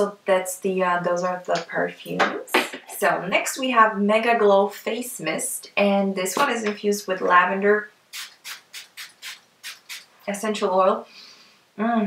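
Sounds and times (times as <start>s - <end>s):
spray bottle spritzing: 8.1s - 10.2s.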